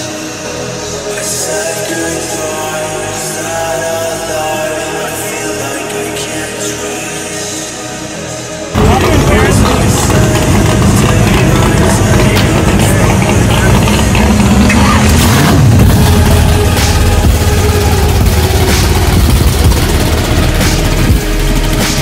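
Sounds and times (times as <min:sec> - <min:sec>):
music: 0:00.0 - 0:22.0
loud car engine running: 0:08.7 - 0:22.0.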